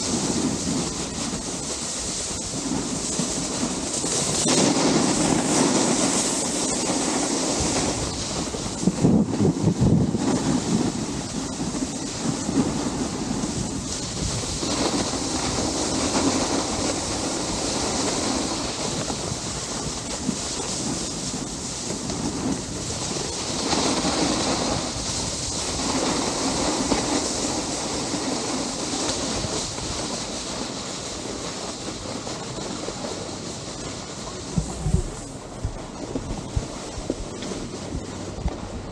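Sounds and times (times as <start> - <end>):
snowboard scraping over snow: 0.0 - 38.9.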